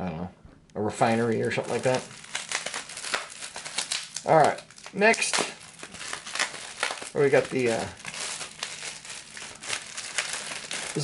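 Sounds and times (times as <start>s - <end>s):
plastic packaging crinkling: 1.0s - 11.0s.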